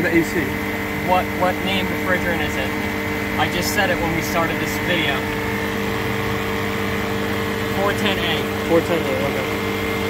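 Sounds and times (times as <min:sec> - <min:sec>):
motor and compressor hum: 0:00.0 - 0:10.0.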